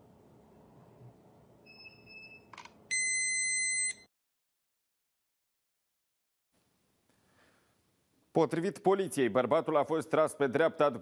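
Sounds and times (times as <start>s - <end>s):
loud steady beep: 1.7s - 4.1s.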